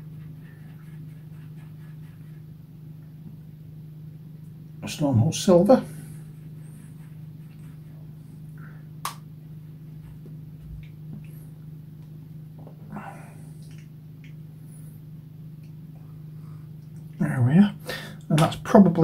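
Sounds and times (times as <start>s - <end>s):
low electrical hum: 0.0s - 19.0s.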